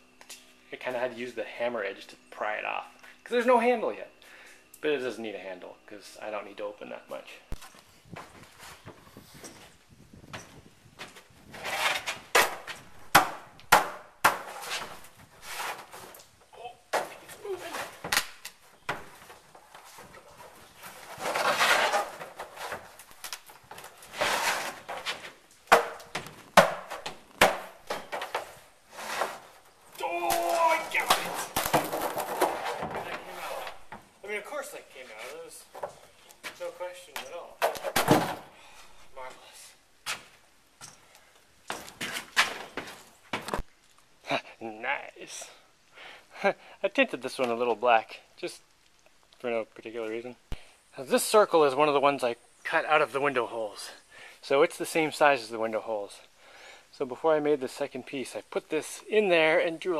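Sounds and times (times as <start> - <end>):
fiberglass scraping: 11.4 - 12.8, 14.3 - 16.2, 17.0 - 34.0
sharp knocks and cracks: 12.3 - 15.1, 17.9 - 19.5, 21.2 - 28.5, 30.2 - 33.2.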